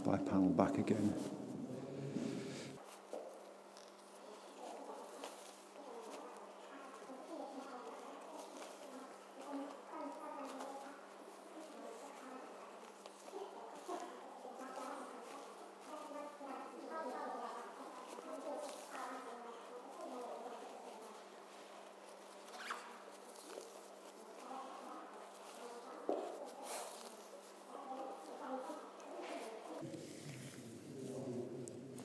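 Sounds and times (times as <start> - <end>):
murmur of voices echoing: 0.0 - 2.9, 24.0 - 32.0
nylon fabric rustling: 0.8 - 32.0.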